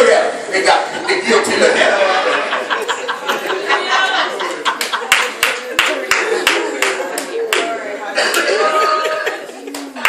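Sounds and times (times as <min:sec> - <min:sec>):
voices: 0:00.0 - 0:10.0
hands clapping in rhythm: 0:04.5 - 0:08.5, 0:09.7 - 0:10.0.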